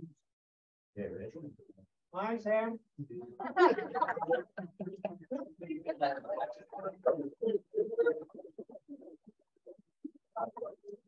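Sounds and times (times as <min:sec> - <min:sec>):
indistinct voices talking: 0:03.2 - 0:11.0.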